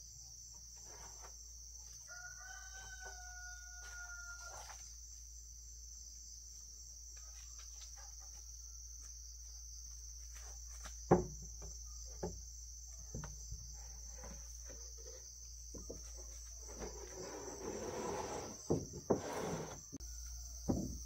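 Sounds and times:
insect chorus drone: 0:00.0 - 0:21.0
roofing sheet scraping on wood: 0:16.2 - 0:20.0.

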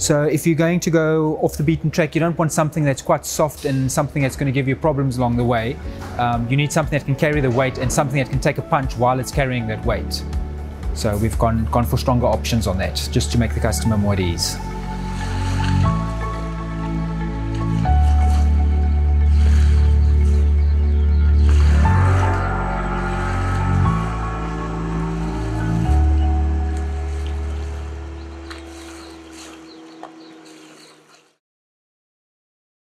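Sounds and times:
deep bass note: 0:03.7 - 0:30.3
slow sustained chords: 0:03.7 - 0:31.4.

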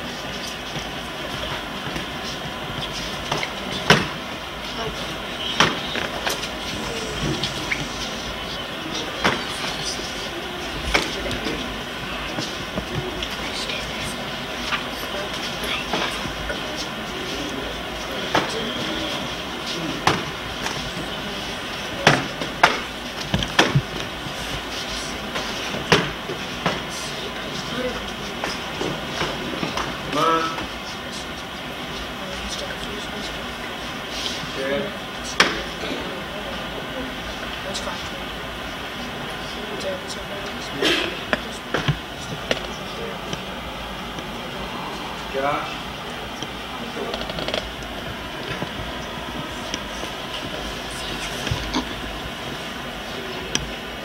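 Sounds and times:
steady hiss: 0:00.0 - 0:54.0.

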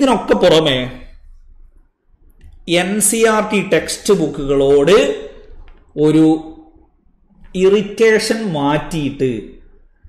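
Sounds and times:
man lecturing: 0:00.0 - 0:01.2, 0:02.5 - 0:06.8, 0:07.5 - 0:09.7
faint low room noise: 0:00.0 - 0:10.0.

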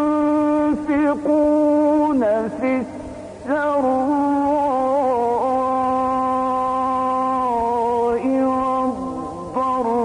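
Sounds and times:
man reciting in long held note: 0:00.0 - 0:10.0.

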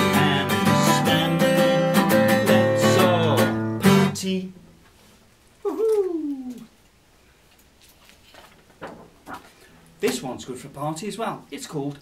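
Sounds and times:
faint rustles: 0:04.8 - 0:10.0.

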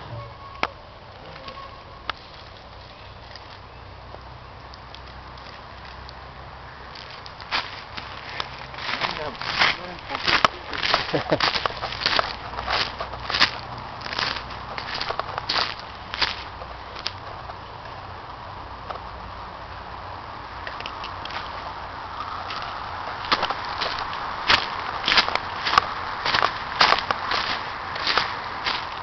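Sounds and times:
footsteps through dry leaves: 0:06.9 - 0:17.1, 0:21.3 - 0:29.0
person's voice: 0:08.9 - 0:11.0.

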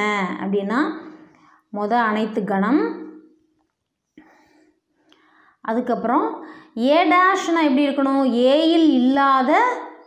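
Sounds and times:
woman speaking softly: 0:00.0 - 0:03.2, 0:05.7 - 0:09.9.

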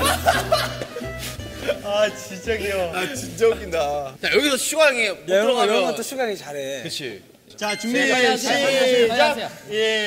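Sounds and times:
young men laughing: 0:00.0 - 0:01.9.

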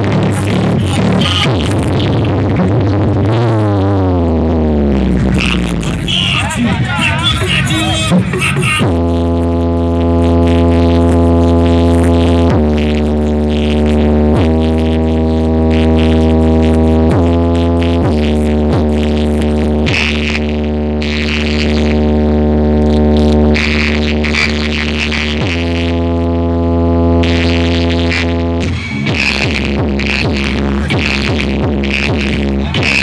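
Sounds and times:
loud electronic music with bass: 0:00.0 - 0:33.0.

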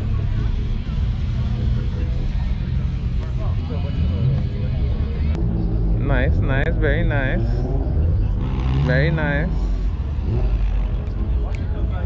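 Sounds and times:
faint voices: 0:00.0 - 0:12.0
low crowd rumble: 0:00.0 - 0:12.0.

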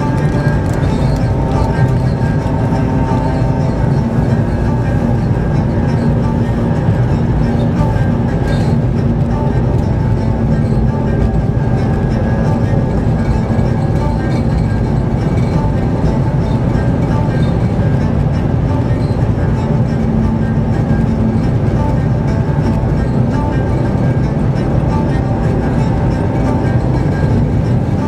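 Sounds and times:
engine and tyre rumble: 0:00.0 - 0:28.0
music from car radio: 0:00.0 - 0:28.0.

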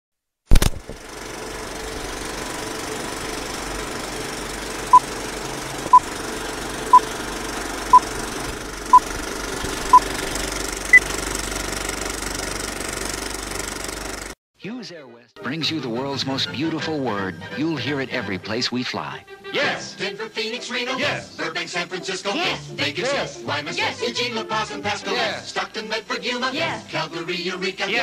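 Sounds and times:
film projector clatter: 0:00.5 - 0:14.4.

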